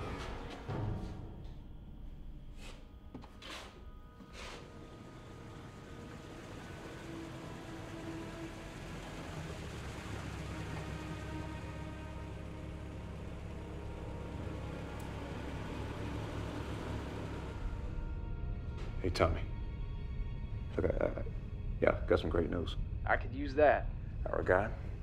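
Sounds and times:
dark film underscore: 0.0s - 25.0s.

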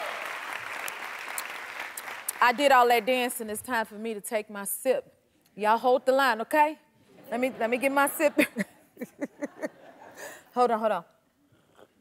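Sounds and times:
audience applauding: 0.0s - 2.6s.

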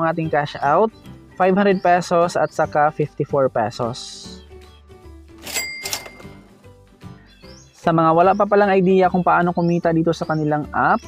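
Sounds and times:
quiet background music: 0.0s - 11.0s
cash register chime: 5.4s - 6.5s.

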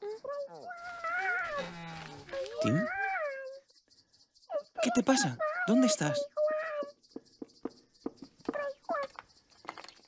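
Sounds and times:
high wavering whimpering cry: 0.0s - 3.7s.

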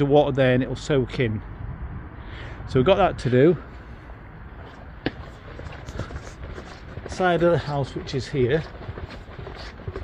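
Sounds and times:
footsteps on paving: 4.6s - 10.0s.

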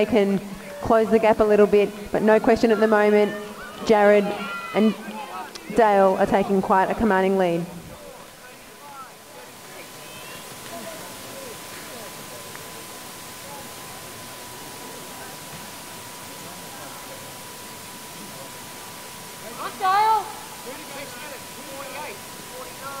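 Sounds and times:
steady hiss: 0.0s - 23.0s.

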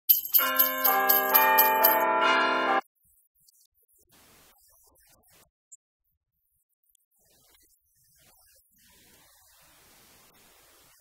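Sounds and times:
bells ringing in a chord: 0.1s - 2.8s.

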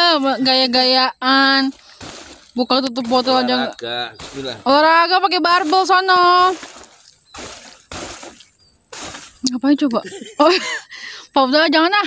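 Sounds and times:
dry leaves rustling and crackling: 1.6s - 9.5s.

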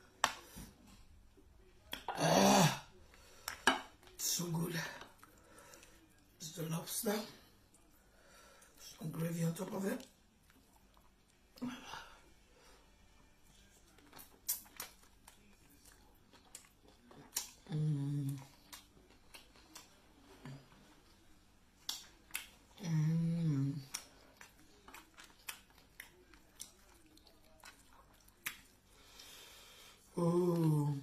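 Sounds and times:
chewing clicks and snaps: 13.8s - 17.7s, 18.4s - 20.0s, 21.8s - 22.6s, 23.9s - 28.8s.

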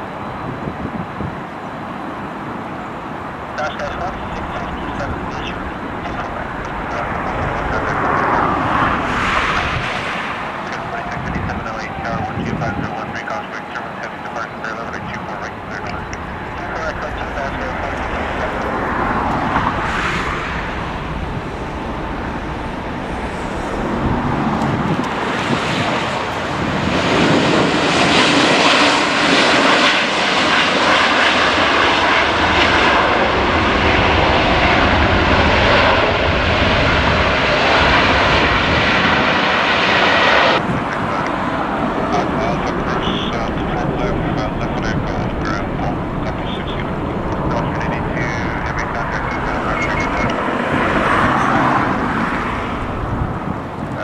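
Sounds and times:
jet climbing away: 0.0s - 54.0s
jet engines roaring at takeoff: 0.0s - 54.0s.

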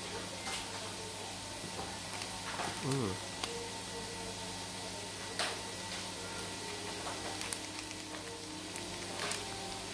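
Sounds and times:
plastic wrapper crinkling: 2.1s - 3.6s, 7.0s - 9.9s.

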